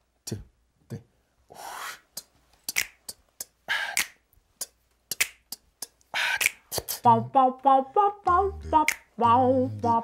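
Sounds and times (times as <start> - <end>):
beatboxed snare: 1.6 - 10.0
finger snaps: 2.2 - 7.0, 8.3 - 9.9.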